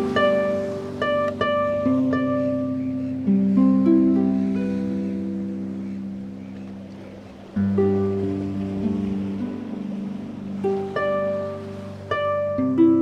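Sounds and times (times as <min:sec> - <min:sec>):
solo harp music: 0:00.0 - 0:13.0.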